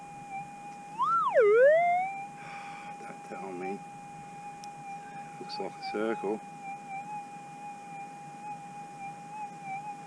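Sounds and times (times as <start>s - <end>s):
metal detector electronic tone: 1.0s - 2.3s, 4.9s - 10.0s.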